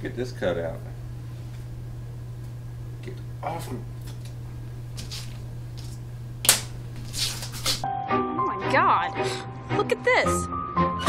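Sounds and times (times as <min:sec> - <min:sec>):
steady low hum: 0:00.0 - 0:07.8
scissors cutting poster board: 0:05.0 - 0:07.8.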